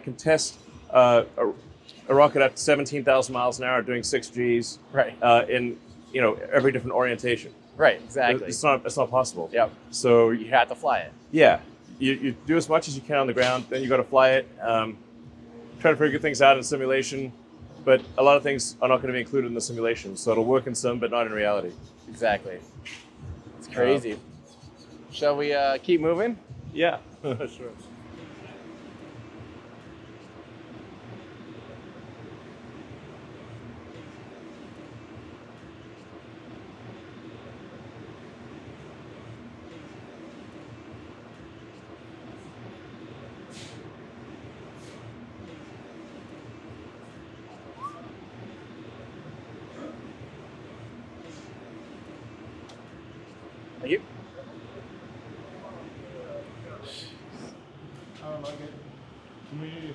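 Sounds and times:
machinery and ventilation hum: 0.0 - 59.9.

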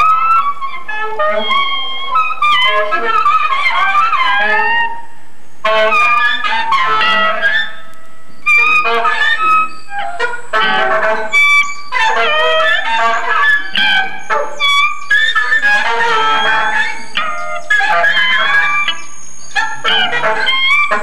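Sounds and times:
band playing: 0.0 - 5.0, 5.6 - 21.0
saxophone improvising: 0.0 - 21.0.

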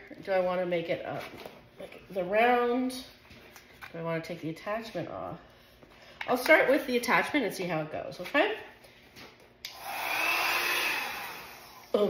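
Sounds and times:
hair dryer blowing: 9.7 - 12.0.

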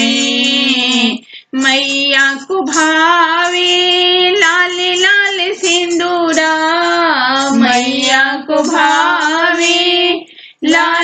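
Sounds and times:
high-pitched voice singing devotional song: 0.0 - 11.0.

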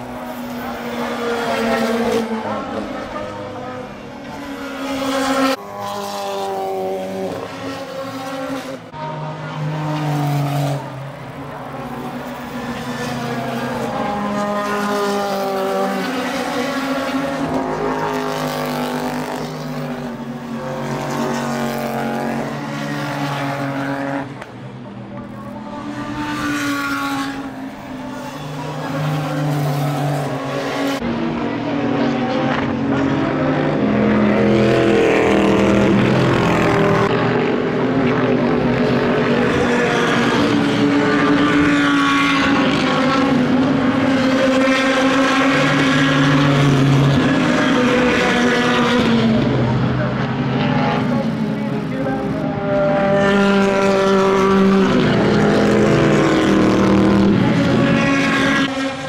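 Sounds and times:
race car engines accelerating: 0.0 - 59.0.

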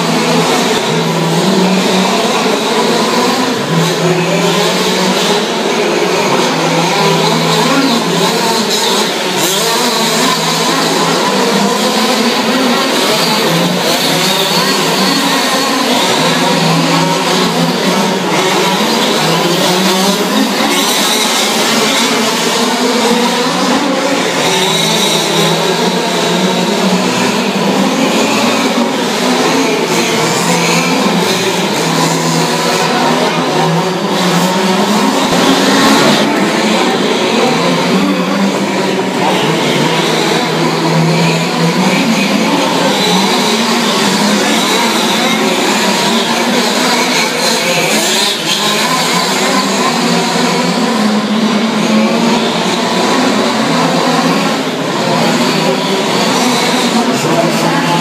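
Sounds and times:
rc car engines revving: 0.0 - 58.0.

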